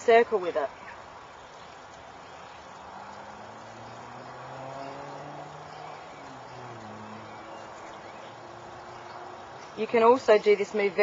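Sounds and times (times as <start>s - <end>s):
outdoor background noise: 0.0s - 11.0s
distant engine hum: 0.7s - 11.0s.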